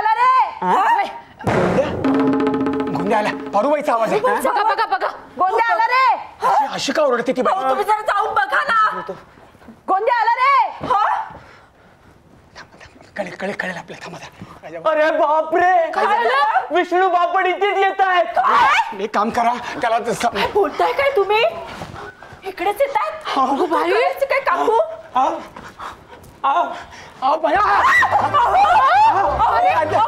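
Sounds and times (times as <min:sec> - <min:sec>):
low background sound: 0:01.3 - 0:06.5.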